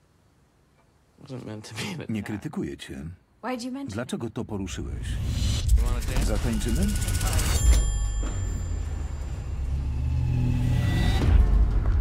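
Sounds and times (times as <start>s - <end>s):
low rumbling drone: 8.7s - 12.0s.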